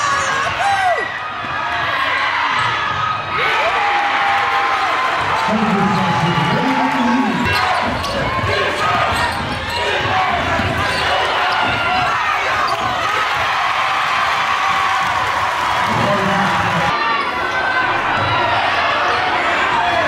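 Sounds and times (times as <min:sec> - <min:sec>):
spectators shouting and talking: 0:00.0 - 0:20.0.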